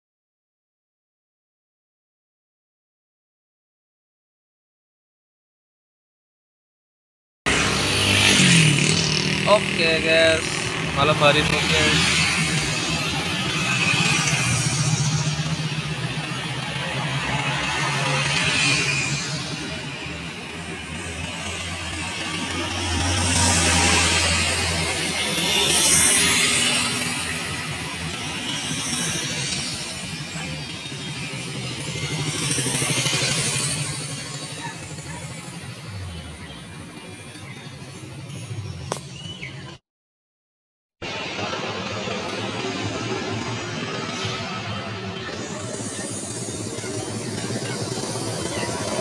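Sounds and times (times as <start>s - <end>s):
cars passing: 7.5s - 39.1s
motorcycles passing: 7.5s - 39.8s, 41.0s - 49.0s.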